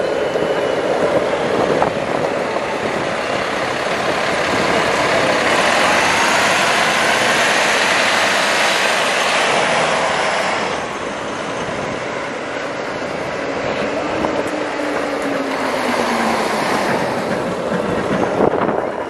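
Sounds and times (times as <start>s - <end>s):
bus engine and road noise: 0.0s - 18.8s.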